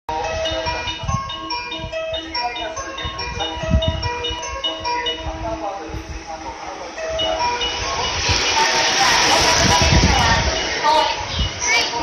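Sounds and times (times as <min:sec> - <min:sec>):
electronic chime melody over loudspeakers: 0:00.1 - 0:12.0.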